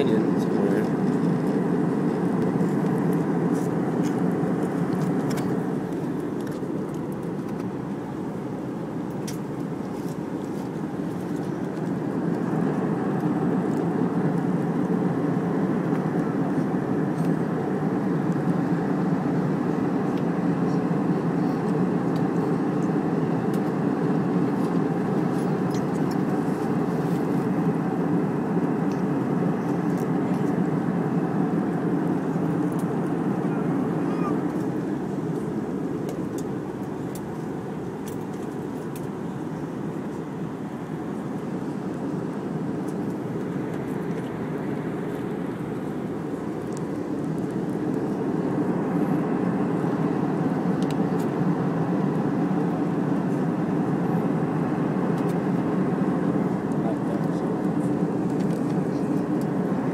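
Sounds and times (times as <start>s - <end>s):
jet airliner cabin noise: 0.0s - 59.9s.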